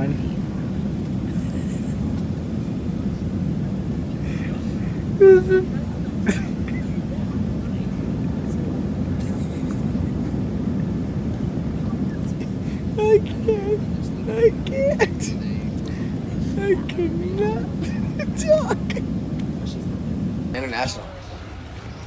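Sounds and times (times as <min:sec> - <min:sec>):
airliner cabin rumble: 0:00.0 - 0:22.0.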